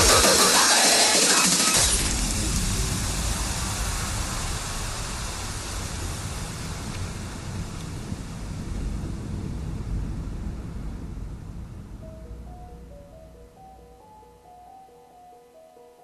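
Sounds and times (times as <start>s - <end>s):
electronic noise sweep hiss: 0.0s - 15.6s
low rumble: 1.9s - 14.5s.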